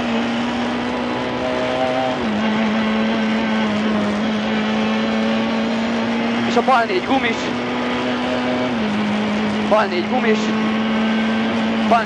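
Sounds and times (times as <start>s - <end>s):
car engine from inside cabin: 0.0s - 12.0s
road noise rushing: 0.0s - 12.0s.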